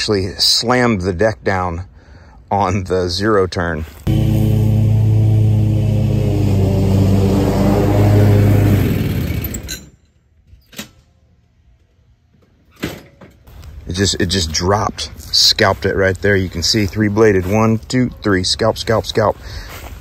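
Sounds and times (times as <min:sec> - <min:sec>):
riding mower engine humming: 0:04.1 - 0:09.8.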